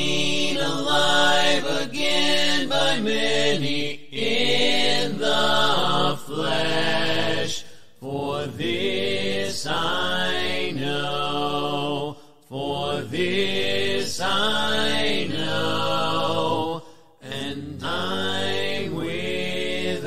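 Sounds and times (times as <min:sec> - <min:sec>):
a cappella hymn singing: 0:00.0 - 0:20.0.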